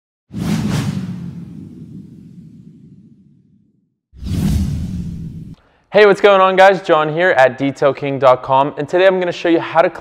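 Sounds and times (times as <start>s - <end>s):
logo intro whoosh: 0.3s - 5.6s.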